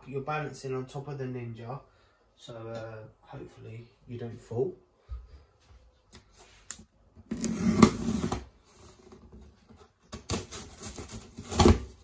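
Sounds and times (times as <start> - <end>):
cardboard box rustling scrape: 7.3 - 9.2.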